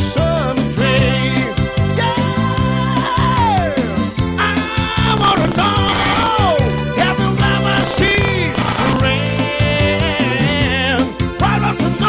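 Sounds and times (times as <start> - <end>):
man singing into microphone: 0.0 - 12.0
dance beat backing: 7.8 - 9.1.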